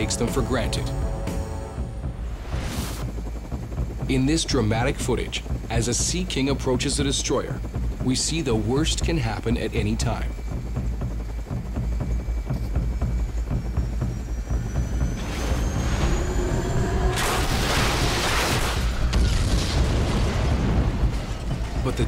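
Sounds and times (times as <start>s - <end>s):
deep steady rumble: 0.0s - 22.0s
dramatic music: 0.0s - 22.0s.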